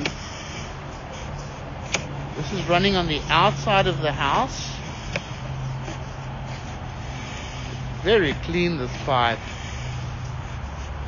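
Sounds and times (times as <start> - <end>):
constant background noise: 0.0 - 11.0
steady low hum: 0.0 - 11.0.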